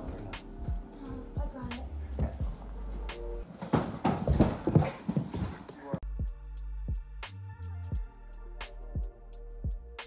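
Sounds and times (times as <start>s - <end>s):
suitcase thudding down stairs: 3.4s - 5.7s.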